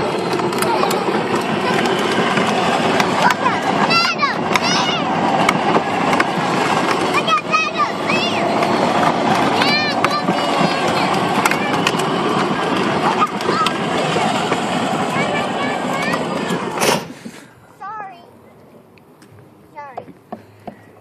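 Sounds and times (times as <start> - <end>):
toy car wheels rolling on asphalt: 0.0 - 21.0.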